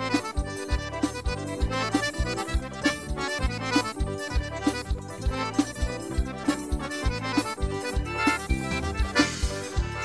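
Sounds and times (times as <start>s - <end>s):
accordion melody: 0.0s - 10.0s
bass: 0.0s - 10.0s.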